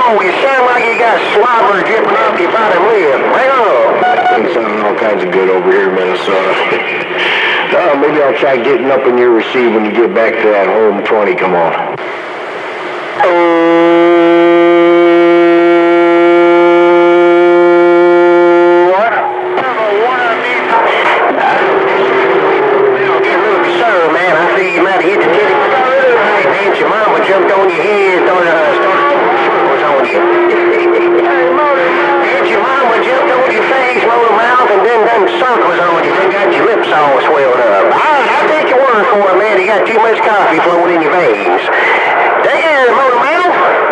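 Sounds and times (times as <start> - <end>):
steady horn-like radio tone: 0.0 - 8.0, 12.0 - 43.9
garbled distant radio voices: 0.0 - 11.8, 19.0 - 43.9.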